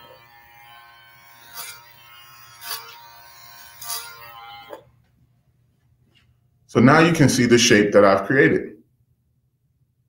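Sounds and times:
clippers cutting through hair: 0.0 - 4.9
electric hair clippers humming: 0.0 - 4.9.

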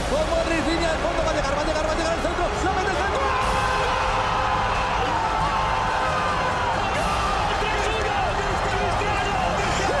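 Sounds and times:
excited commentator's voice: 0.0 - 10.0
stadium crowd noise: 0.0 - 10.0.

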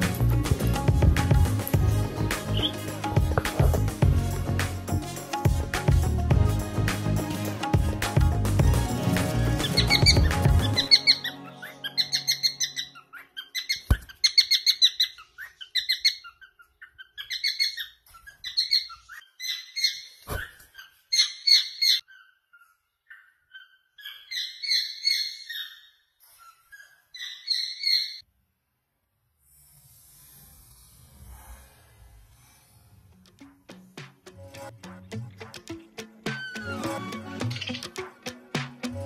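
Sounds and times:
music: 0.0 - 13.1, 33.2 - 39.0
cockatiel chirping: 9.6 - 28.2.

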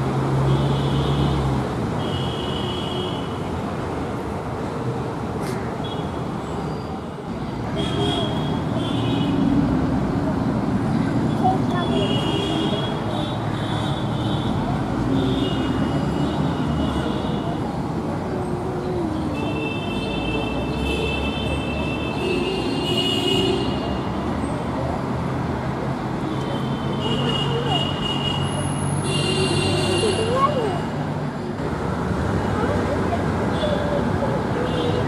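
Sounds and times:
city road traffic: 0.0 - 35.0
faint voices: 15.9 - 21.3, 23.9 - 35.0
vehicle horns: 19.4 - 24.1, 26.3 - 30.5.

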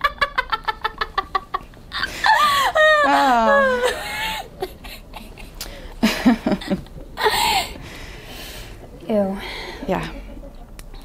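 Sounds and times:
woman laughing: 0.0 - 7.7.

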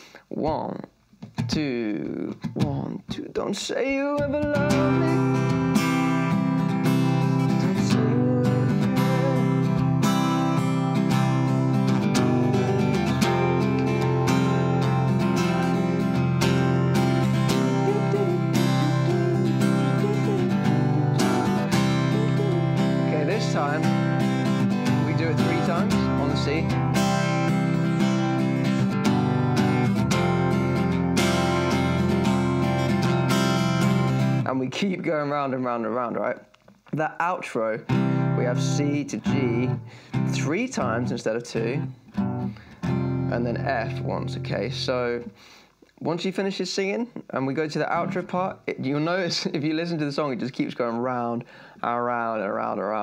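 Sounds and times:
acoustic guitar strumming: 3.8 - 36.1, 37.2 - 45.5, 47.7 - 51.6.

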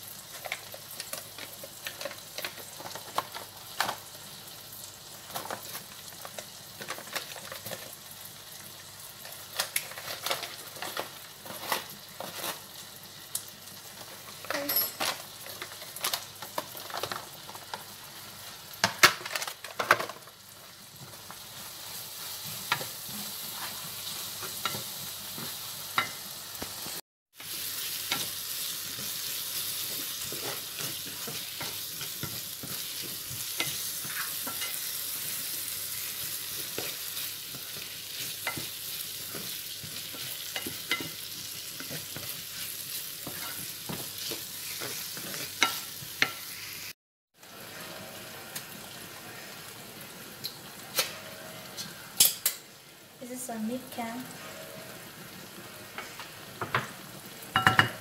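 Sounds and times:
onions sizzling in a frying pan: 0.0 - 58.0
wooden spoon scraping a pan: 9.9 - 12.7, 21.6 - 25.6, 28.9 - 46.4.

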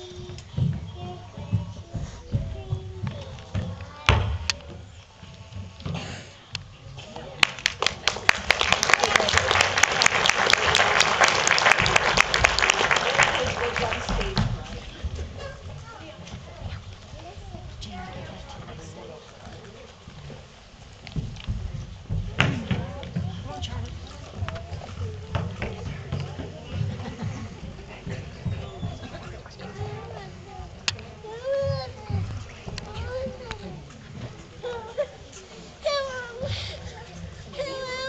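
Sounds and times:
people talking: 0.0 - 4.8, 6.8 - 20.3, 21.6 - 38.0.

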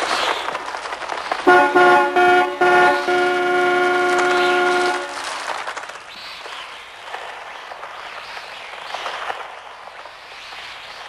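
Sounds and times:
car horn honking: 1.5 - 5.3.

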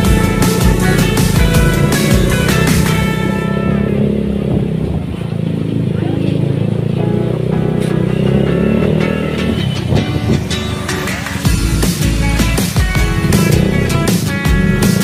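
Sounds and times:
background music: 0.0 - 4.8, 6.5 - 15.0
motorcycle engine running: 0.0 - 15.0.

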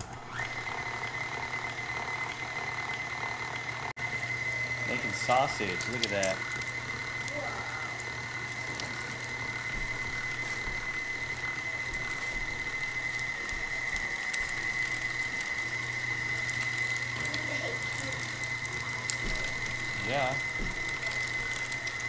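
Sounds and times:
mixer motor and gear whine: 0.0 - 22.0.

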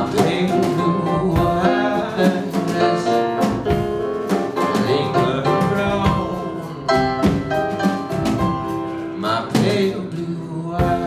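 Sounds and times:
man singing: 0.0 - 3.8, 4.5 - 7.5, 8.9 - 11.0
piano playing: 0.0 - 11.0.

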